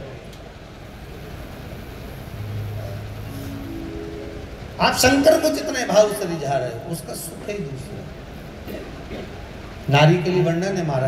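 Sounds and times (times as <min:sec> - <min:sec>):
steady low hum: 0:00.0 - 0:10.8
low rumbling background noise: 0:00.0 - 0:11.0
high held tones: 0:01.3 - 0:06.9.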